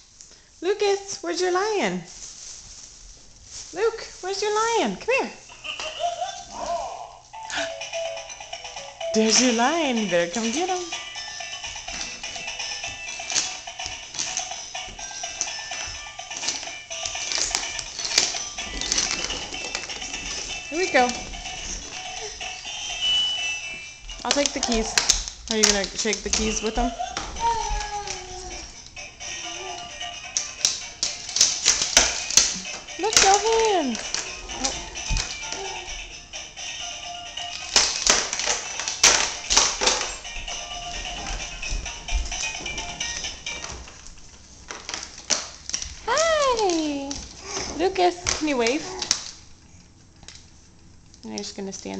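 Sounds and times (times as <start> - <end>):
tinny electronic toy melody: 7.3 - 17.4, 18.2 - 24.3
plastic toy clicks and knocks: 30.3 - 35.5, 37.5 - 40.1.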